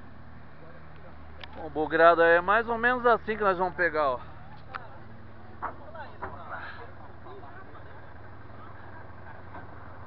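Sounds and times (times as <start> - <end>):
bus diesel engine humming: 0.0 - 10.0.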